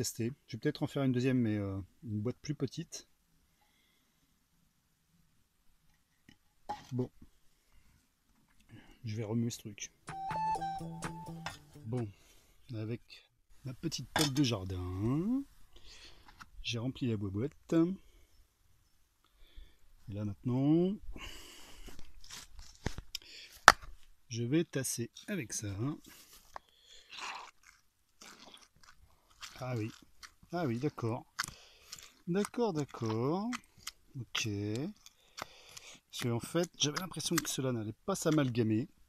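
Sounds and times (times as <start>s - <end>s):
footsteps through undergrowth: 21.9s - 23.1s.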